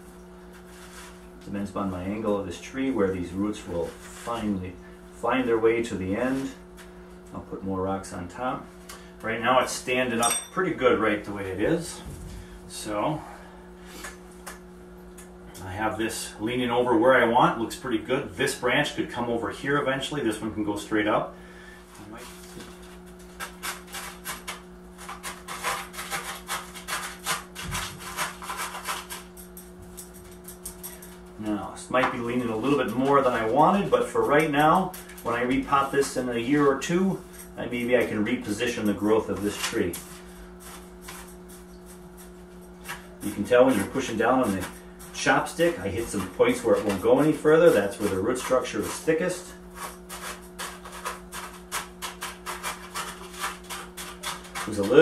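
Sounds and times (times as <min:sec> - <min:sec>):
steady low hum: 0:00.0 - 0:55.0
chopstick scraping gritty soil: 0:32.2 - 0:55.0.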